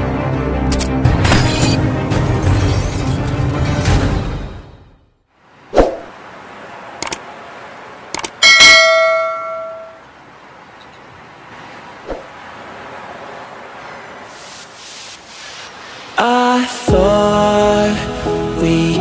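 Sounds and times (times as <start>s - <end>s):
quick clicks: 7.0s - 7.2s, 8.1s - 8.4s
loud bell ding: 8.4s - 10.0s.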